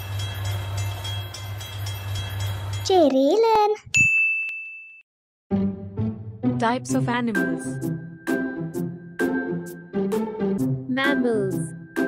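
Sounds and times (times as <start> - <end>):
music: 0.0 - 2.8, 5.5 - 12.0.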